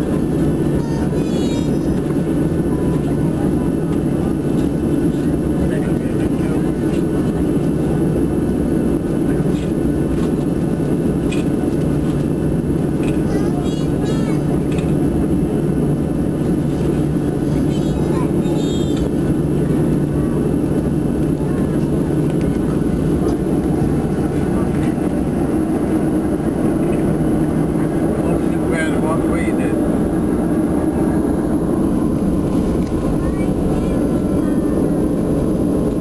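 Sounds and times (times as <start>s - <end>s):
high steady engine whine: 0.0s - 36.0s
jet engines low rumble: 0.0s - 36.0s.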